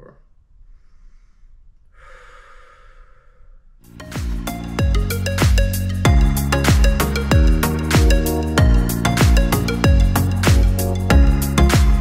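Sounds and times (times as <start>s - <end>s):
man inhaling deeply: 0.6s - 3.8s.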